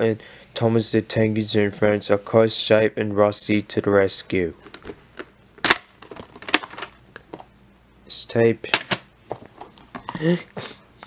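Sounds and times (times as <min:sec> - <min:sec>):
plastic cassette case clicks: 0:04.7 - 0:07.4.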